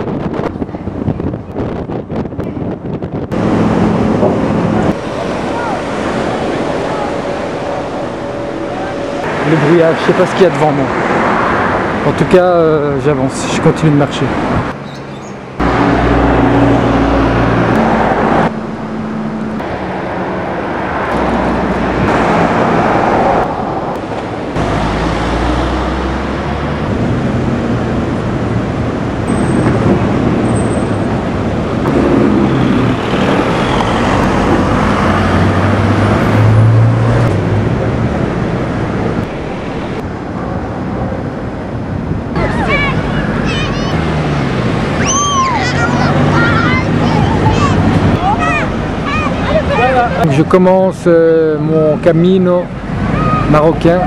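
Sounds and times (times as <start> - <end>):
tyres on the road: 0.0 - 54.0
vehicle engines running: 2.5 - 54.0.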